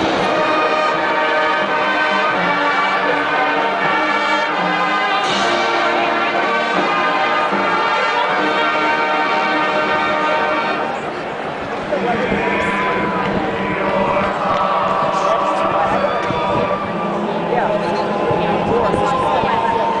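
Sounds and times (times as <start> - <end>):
brass playing sustained chords: 0.0 - 20.0.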